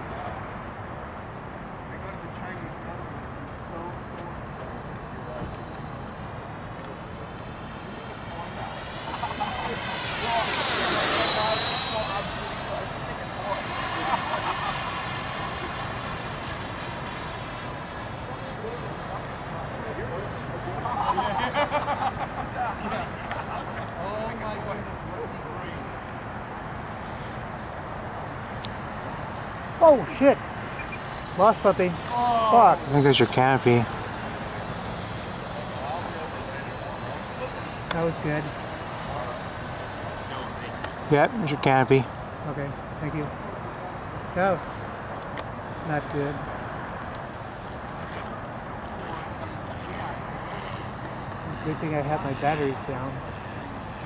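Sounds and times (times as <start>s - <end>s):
model jet fans whining: 0.0s - 54.0s.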